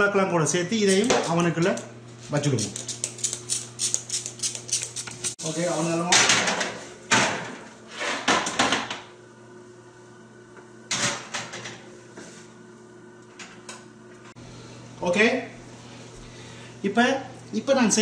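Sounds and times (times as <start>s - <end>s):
metal baking trays clattering: 6.0s - 8.8s.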